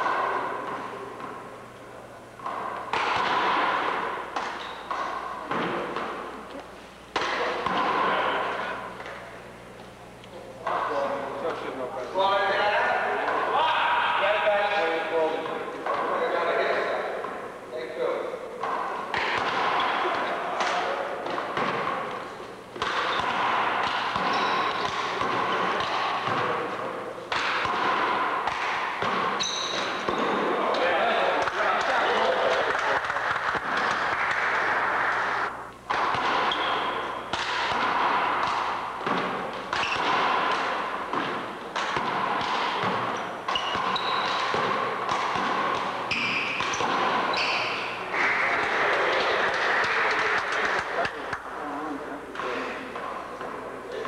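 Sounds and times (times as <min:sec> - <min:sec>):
handball smacking wall and floor: 0:02.4 - 0:06.6, 0:07.2 - 0:09.2, 0:18.6 - 0:35.3, 0:35.9 - 0:51.5
sneakers squeaking on hardwood: 0:04.4 - 0:05.8, 0:24.2 - 0:26.6, 0:29.1 - 0:30.4, 0:36.4 - 0:37.3, 0:39.1 - 0:40.2, 0:42.6 - 0:44.8, 0:46.0 - 0:48.0.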